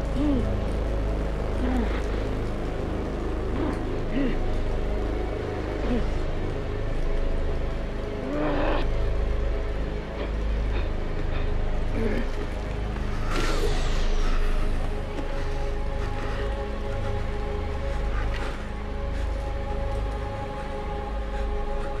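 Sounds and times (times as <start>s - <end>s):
strained human groans: 0.0s - 0.6s, 3.5s - 4.5s
deep rumbling drone: 0.0s - 22.0s.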